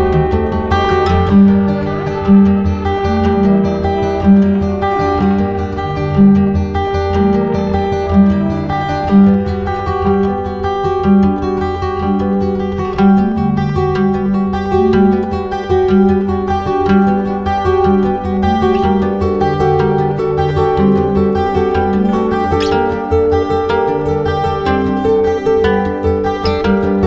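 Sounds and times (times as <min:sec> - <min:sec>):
steady bass line: 0:00.0 - 0:16.6
plucked strings music: 0:00.0 - 0:27.0.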